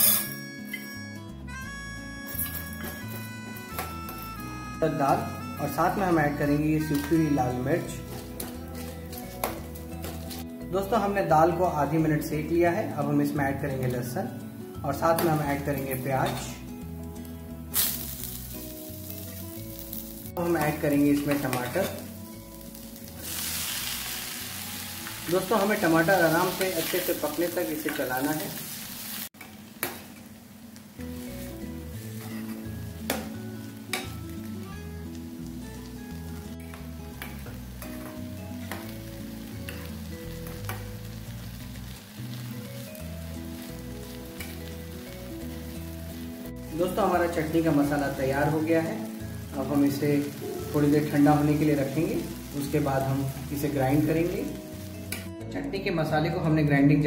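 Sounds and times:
soft background music: 0.0s - 29.2s, 30.8s - 57.0s
onion and garlic sizzling in oil: 4.1s - 55.3s.

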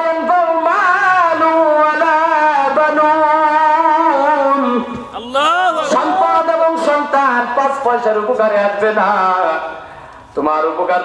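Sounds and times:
man chanting into microphone: 0.0s - 9.5s.

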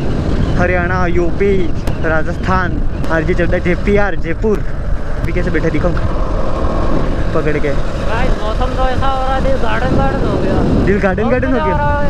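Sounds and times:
motorcycle rumble: 0.0s - 12.0s
wind rush on microphone: 0.0s - 12.0s
man talking: 0.5s - 6.0s, 7.2s - 12.0s.

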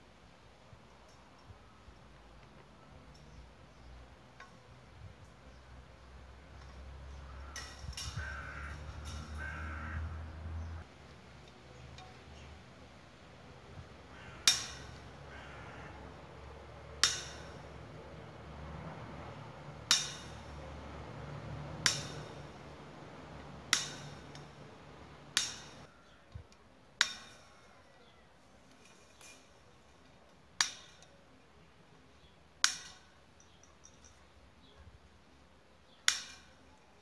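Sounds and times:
wire cutters snapping wire mesh: 7.5s - 9.6s, 14.4s - 15.1s, 17.0s - 17.7s, 19.8s - 20.7s, 21.8s - 22.5s, 23.4s - 24.7s, 25.3s - 25.9s, 27.0s - 27.6s, 32.6s - 33.1s, 36.1s - 36.6s.

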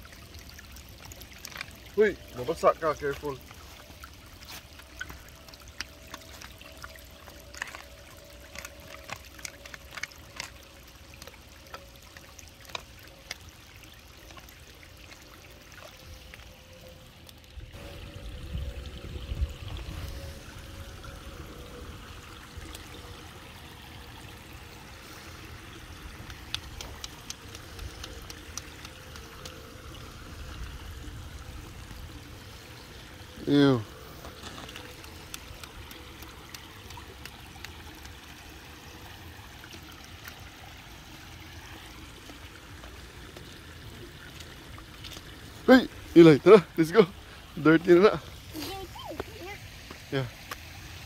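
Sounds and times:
water trickling over pebbles: 0.0s - 51.0s.

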